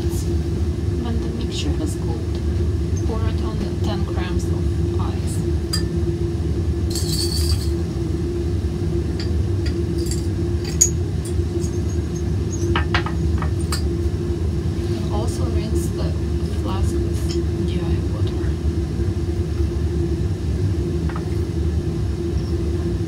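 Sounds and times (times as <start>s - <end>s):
fume hood hum: 0.0s - 23.0s
glassware clinking: 6.9s - 7.8s, 10.0s - 11.9s, 12.5s - 13.9s.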